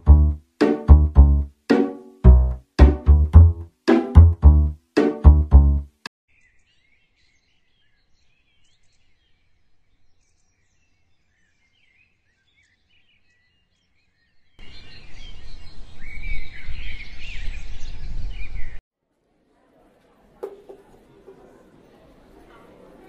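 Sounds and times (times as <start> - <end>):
small birds chirping: 6.3 - 18.8.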